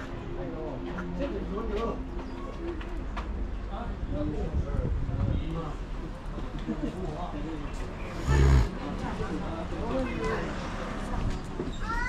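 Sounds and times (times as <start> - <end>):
people talking in background: 0.0 - 12.0.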